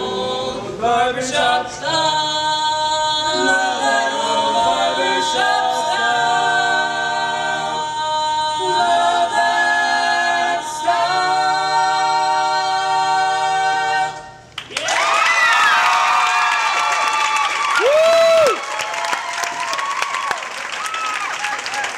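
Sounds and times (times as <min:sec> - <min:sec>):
male voices singing a cappella: 0:00.0 - 0:14.2
audience applause and cheering: 0:14.6 - 0:21.9.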